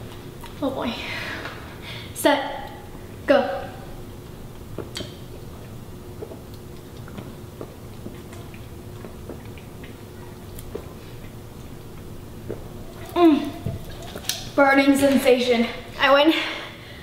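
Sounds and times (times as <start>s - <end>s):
faint steady hum: 0.0s - 17.0s.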